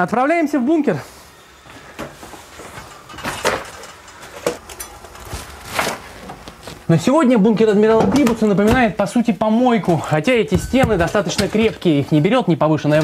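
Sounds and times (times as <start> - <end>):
footsteps scuffing: 9.8 - 12.0.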